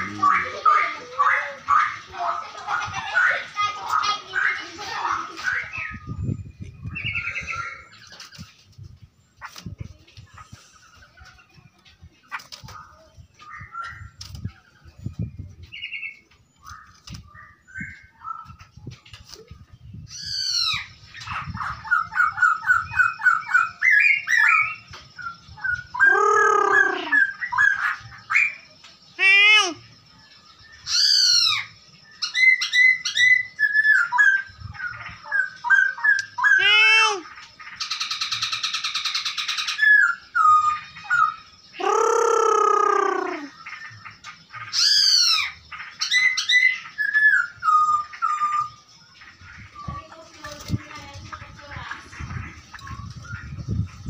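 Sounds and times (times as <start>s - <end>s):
laughingthrush singing: 0.0s - 6.0s, 25.9s - 28.1s, 41.0s - 44.7s.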